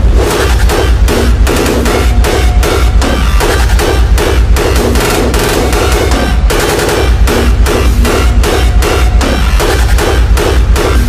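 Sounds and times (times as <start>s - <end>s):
distorted kick drum: 0.0s - 11.0s
synth: 0.0s - 11.0s.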